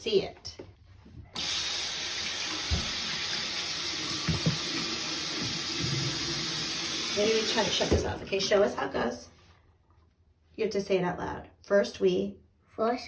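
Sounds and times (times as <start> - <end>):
sink tap turning on: 1.4 - 8.3
water running into basin: 1.4 - 8.9.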